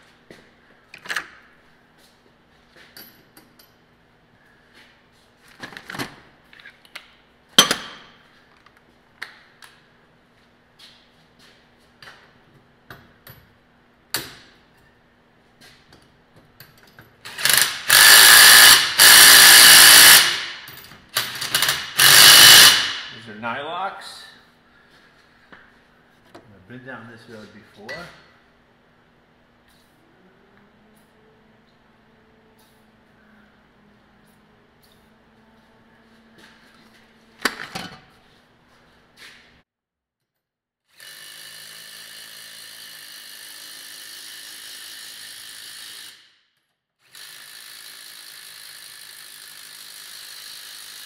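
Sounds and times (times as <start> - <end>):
impact wrench whirring: 17.3 - 23.2, 40.9 - 46.4, 47.0 - 51.0.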